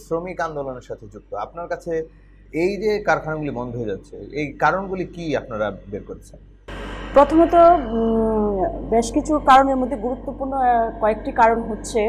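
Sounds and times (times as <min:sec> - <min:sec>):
woman speaking: 0:07.2 - 0:12.0.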